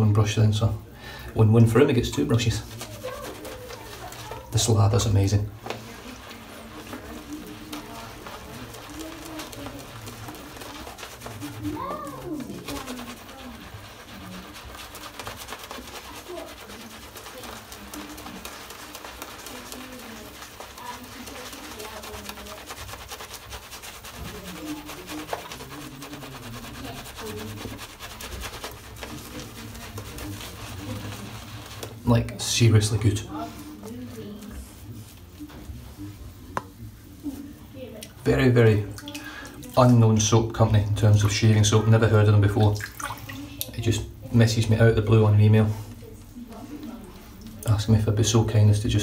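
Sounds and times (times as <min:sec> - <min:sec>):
shaving brush swishing through lather: 0:01.6 - 0:49.0.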